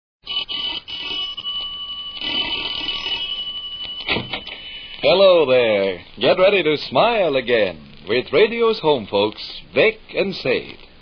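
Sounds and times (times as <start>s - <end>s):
radio hiss: 4.2s - 11.0s.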